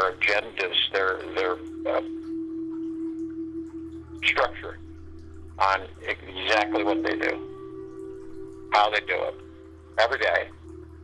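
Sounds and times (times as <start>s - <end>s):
faint low hum: 0.0s - 11.0s
meditation music steady note: 0.0s - 11.0s.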